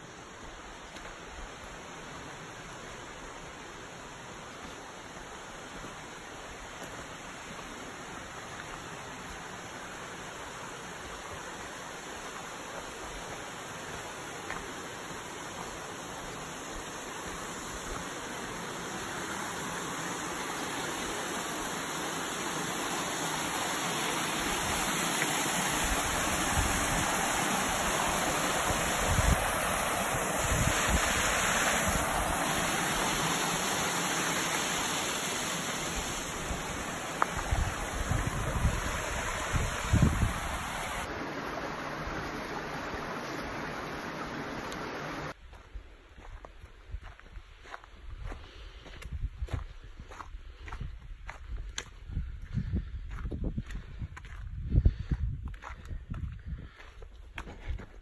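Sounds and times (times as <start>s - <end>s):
waterfall over rocks: 0.0s - 45.4s.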